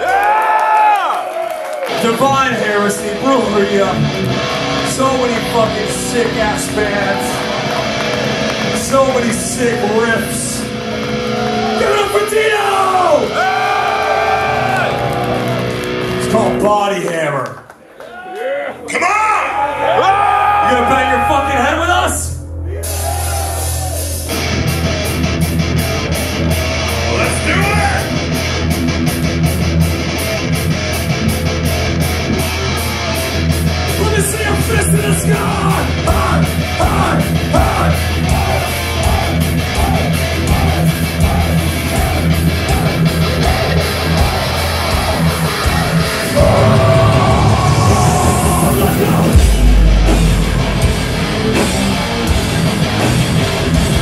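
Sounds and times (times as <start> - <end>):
drums: 0.0 - 16.7, 19.0 - 54.0
electric guitars riffing: 1.7 - 17.4, 18.9 - 54.0
heavy metal band playing: 1.9 - 17.2, 19.0 - 54.0.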